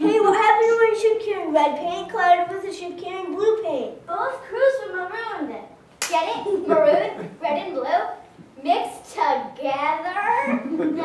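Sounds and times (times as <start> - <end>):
children speaking: 0.0 - 11.0
hand clap: 6.0 - 6.3.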